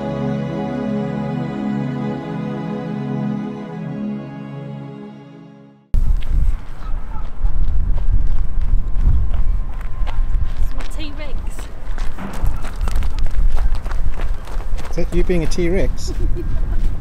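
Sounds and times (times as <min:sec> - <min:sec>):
wind buffeting microphone: 0:06.0 - 0:17.0
footsteps crunching on gravel: 0:06.1 - 0:17.0.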